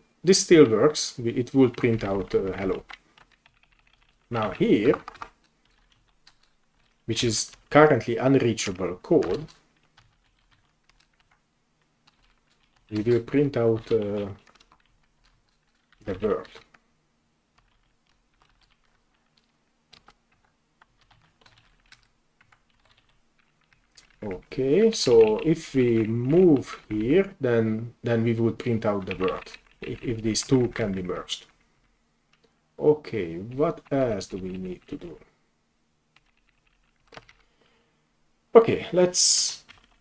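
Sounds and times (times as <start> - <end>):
typing on keyboard: 1.4 - 7.9, 8.7 - 16.8, 17.6 - 27.3, 28.8 - 31.6, 33.4 - 35.2, 36.2 - 37.5, 39.6 - 40.0.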